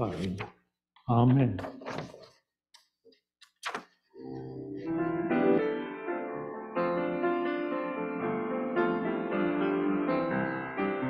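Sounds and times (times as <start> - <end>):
piano music with held chords: 4.2 - 11.0.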